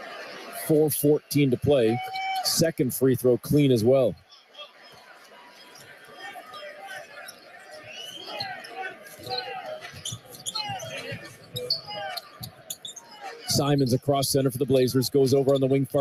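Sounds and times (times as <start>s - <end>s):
crowd chatter: 0.0s - 16.0s
shoe squeaks: 6.4s - 13.5s.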